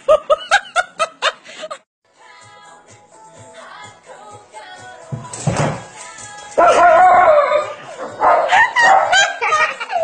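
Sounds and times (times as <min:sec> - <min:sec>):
dog howling: 0:06.6 - 0:09.1.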